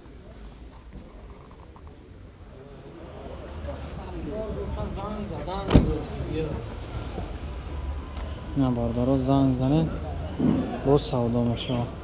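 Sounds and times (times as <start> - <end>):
voices of people: 0.0 - 12.0
car door slamming: 5.5 - 6.3.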